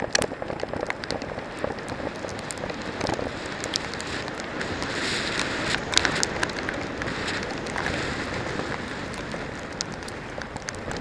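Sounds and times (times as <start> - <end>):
bike tyres rolling on mud: 0.0 - 11.0
mud and grit spattering: 0.0 - 11.0
wind noise on microphone: 0.0 - 11.0.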